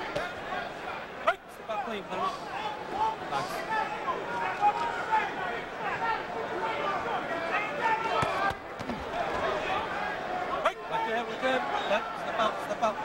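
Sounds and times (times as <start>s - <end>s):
arena crowd shouting and chatter: 0.0s - 13.0s.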